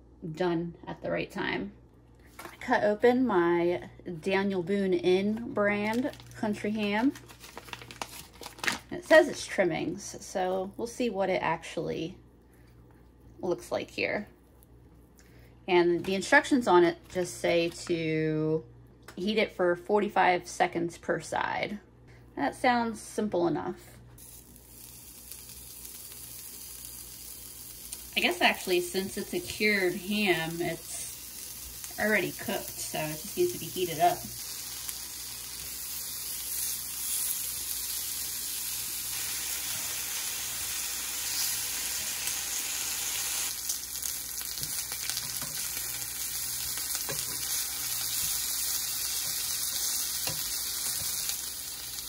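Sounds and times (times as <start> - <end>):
ham sizzling on a griddle: 24.2 - 52.0.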